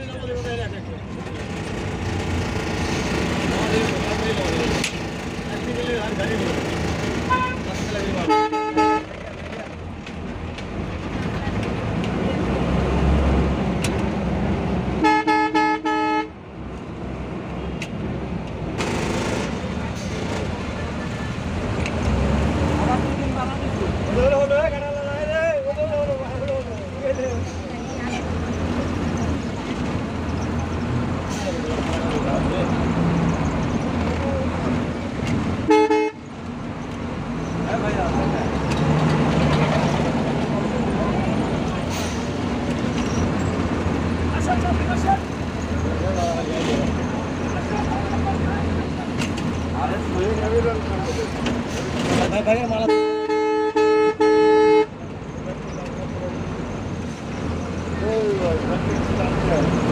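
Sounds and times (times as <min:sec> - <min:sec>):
people talking: 0:03.4 - 0:06.7, 0:31.3 - 0:32.8, 0:37.7 - 0:38.6, 0:44.3 - 0:45.3, 0:45.9 - 0:53.1, 0:57.9 - 0:59.9
vehicle horn honking: 0:07.3 - 0:09.1, 0:15.0 - 0:16.3, 0:35.7 - 0:36.2, 0:52.8 - 0:54.9.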